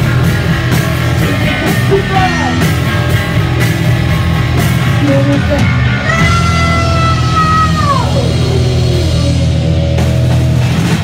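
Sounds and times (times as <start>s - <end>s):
punk band playing: 0.0s - 11.0s.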